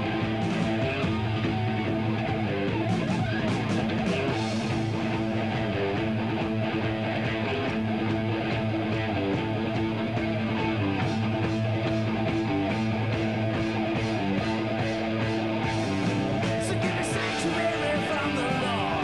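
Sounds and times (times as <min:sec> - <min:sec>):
heavy metal band playing: 0:00.0 - 0:19.0.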